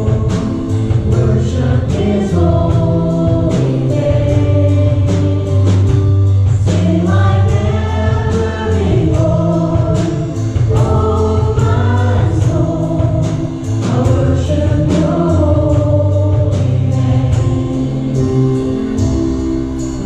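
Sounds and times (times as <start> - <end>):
women singing: 0.0 - 18.8
band with keyboards bass and drums: 0.0 - 20.0.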